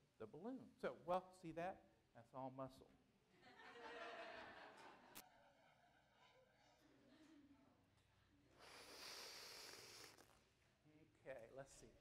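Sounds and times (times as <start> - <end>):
man blowing into a balloon: 8.6 - 10.4.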